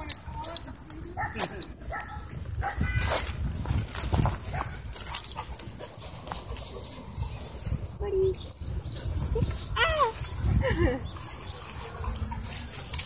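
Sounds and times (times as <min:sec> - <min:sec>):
dogs moving on grass: 0:00.0 - 0:08.0, 0:09.2 - 0:13.0.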